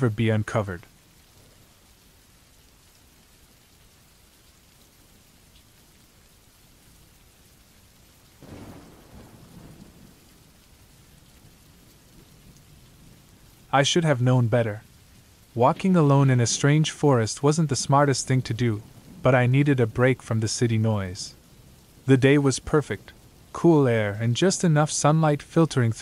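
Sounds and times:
faint steady rain: 0.0 - 26.0
low rumble of thunder: 8.4 - 13.7, 18.8 - 20.0.

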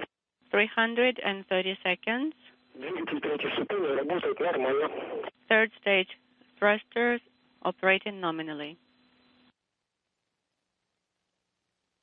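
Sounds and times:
person talking over radio: 2.8 - 6.0.

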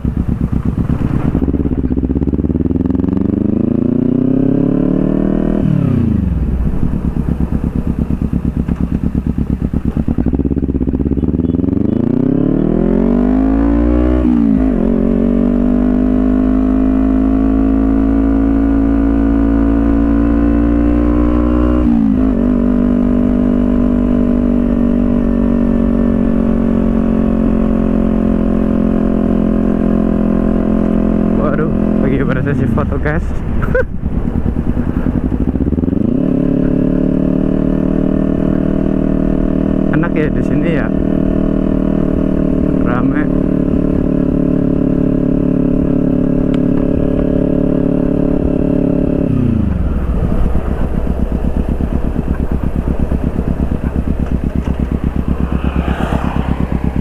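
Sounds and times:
motorcycle engine accelerating: 0.0 - 57.0.

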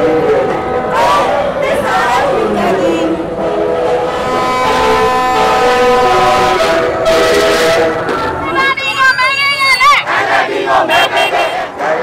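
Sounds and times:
crowd: 0.0 - 12.0
vehicle horns blaring: 2.6 - 10.0, 10.7 - 11.8.

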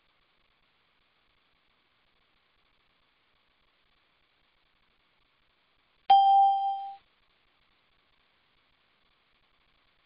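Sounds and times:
electronic notification ding: 6.1 - 7.0.

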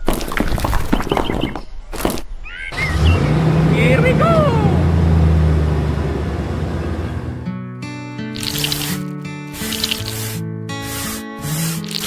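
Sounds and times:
low engine-like drone: 2.8 - 7.5.

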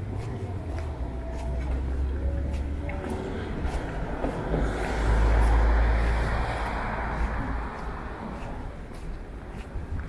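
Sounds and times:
low rumbling outdoor noise: 0.0 - 10.0.

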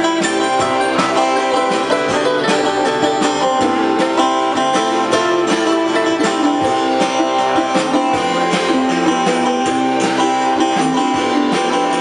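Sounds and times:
band playing instrumental: 0.0 - 12.0
plucked guitar lines: 0.0 - 12.0
steady drum beat: 0.0 - 12.0.

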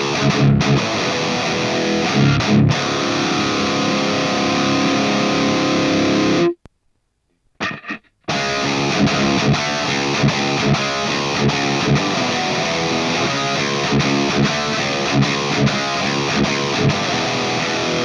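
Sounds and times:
distorted electric guitar riff: 0.0 - 6.7, 7.6 - 18.0.

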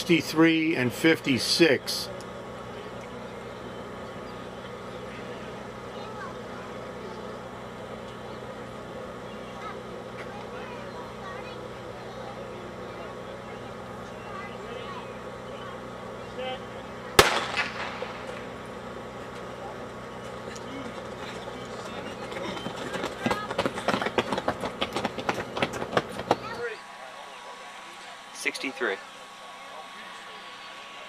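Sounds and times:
steady background hum: 0.0 - 31.0
starting pistol crack: 17.2 - 18.4.

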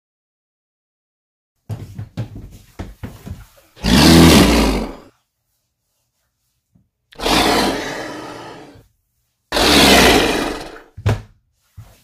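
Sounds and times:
monster roars: 3.8 - 5.1, 7.2 - 8.8, 9.5 - 10.9.

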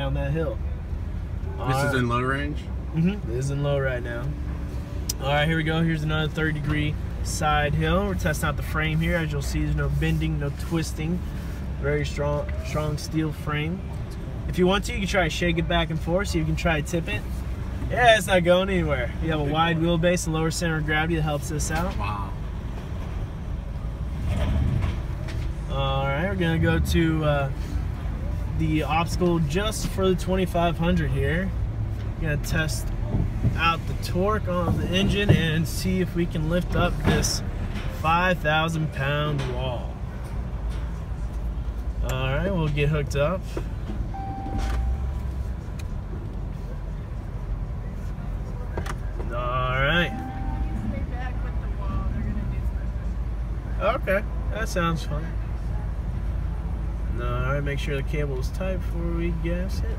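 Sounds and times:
low rumble inside truck cab: 0.0 - 59.9.

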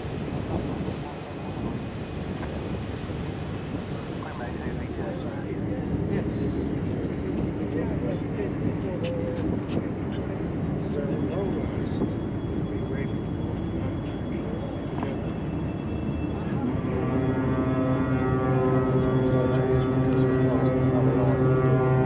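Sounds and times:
indistinct voices: 4.2 - 22.0
ship horn deep blast: 14.2 - 22.0.

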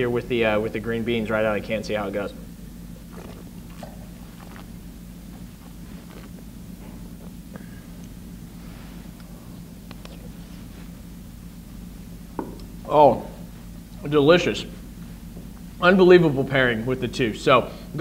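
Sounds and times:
low room hum: 0.0 - 18.0.

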